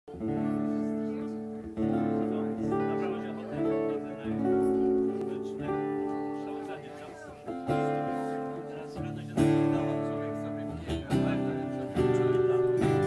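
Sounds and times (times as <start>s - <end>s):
acoustic guitar strumming chords: 0.1s - 13.0s
electric guitar strumming chords: 0.1s - 13.0s.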